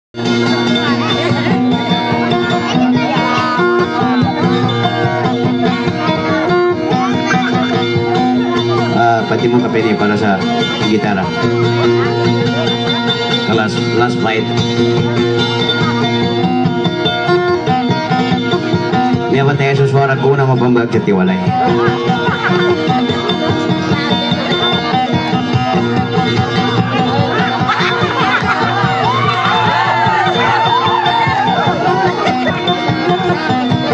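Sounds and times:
plucked guitar: 0:00.2 - 0:33.9.

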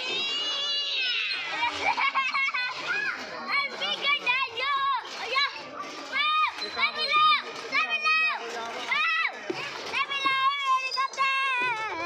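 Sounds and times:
young children calling: 0:00.0 - 0:12.0.

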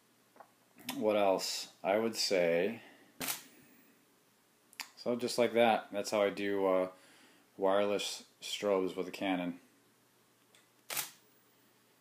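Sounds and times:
camera shutter click: 0:03.2 - 0:03.5, 0:10.9 - 0:11.2.

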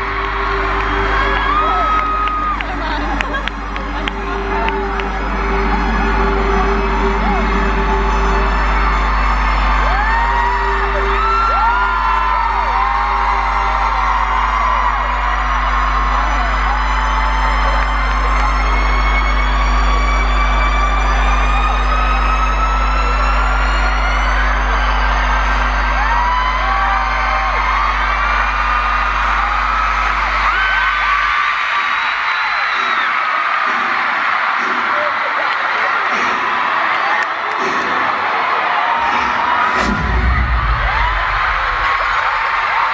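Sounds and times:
rising high synth tones: 0:00.0 - 0:30.6
deep synth drone: 0:00.0 - 0:31.5, 0:39.0 - 0:42.9
crowd screaming and whooping: 0:00.0 - 0:42.9.

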